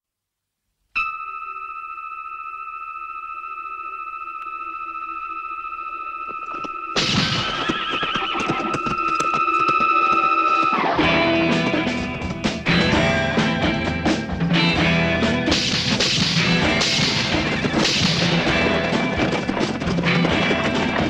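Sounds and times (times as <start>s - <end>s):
horse whinnying: 6.5s - 11.5s
music with a beat: 11.0s - 21.0s.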